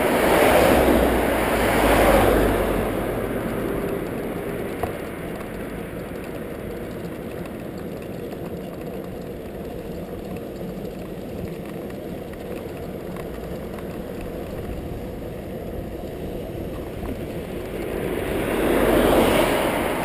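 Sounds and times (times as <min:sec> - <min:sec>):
tyre and road noise: 0:00.0 - 0:20.0
wind rushing over microphone: 0:13.7 - 0:20.0.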